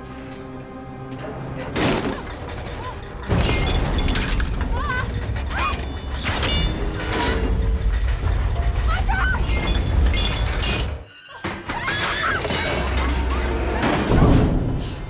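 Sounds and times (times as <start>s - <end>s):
steel ladder creaking and clanking: 2.1s - 14.5s.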